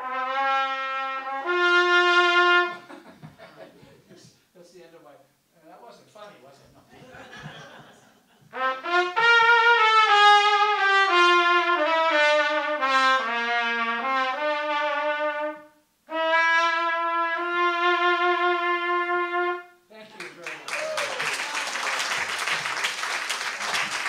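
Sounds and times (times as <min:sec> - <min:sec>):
solo cornet: 0:00.0 - 0:03.0, 0:08.5 - 0:20.0.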